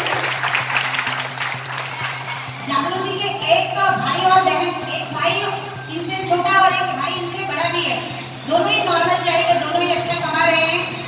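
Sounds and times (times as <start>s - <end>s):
audience applauding: 0.0s - 2.6s.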